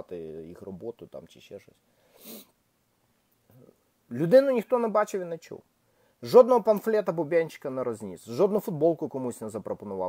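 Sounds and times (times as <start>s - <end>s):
man breathing in: 1.9s - 2.5s.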